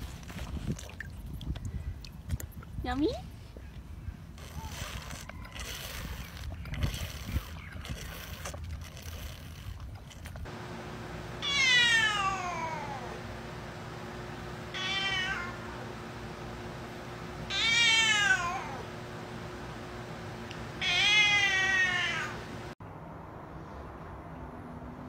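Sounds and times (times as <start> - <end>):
cat meowing: 11.4 - 13.1, 14.7 - 15.6, 17.5 - 18.8, 20.8 - 22.4.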